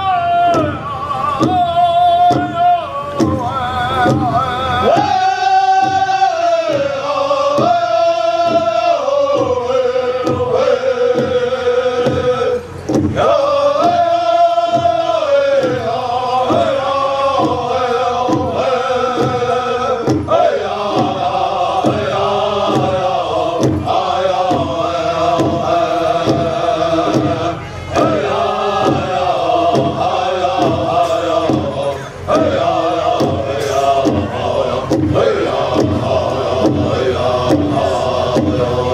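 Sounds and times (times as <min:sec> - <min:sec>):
large drum steady beat: 0:00.0 - 0:38.9
men chanting together: 0:00.0 - 0:38.9.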